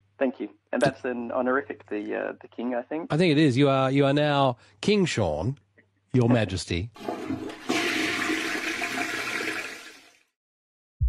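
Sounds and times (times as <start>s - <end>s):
toilet flushing: 7.0s - 10.4s.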